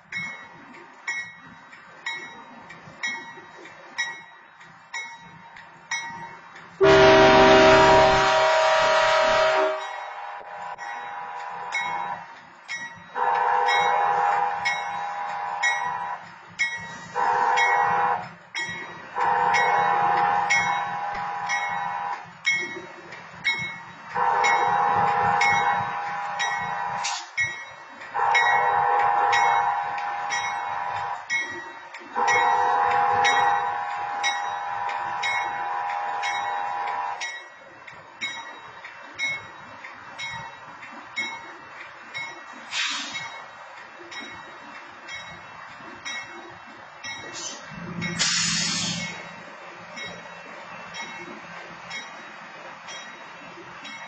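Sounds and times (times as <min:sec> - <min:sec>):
crossing signal bell dinging: 0:00.0 - 0:48.3, 0:49.0 - 0:54.0
locomotive air horn blasts: 0:06.8 - 0:12.2, 0:13.2 - 0:16.2, 0:17.1 - 0:18.2, 0:19.2 - 0:22.2, 0:24.2 - 0:27.3, 0:28.2 - 0:31.2, 0:32.2 - 0:37.2.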